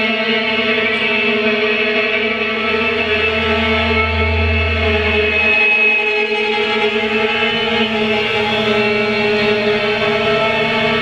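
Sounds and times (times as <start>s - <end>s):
violin bowing sustained notes: 0.0s - 11.0s
low hum: 2.2s - 10.5s.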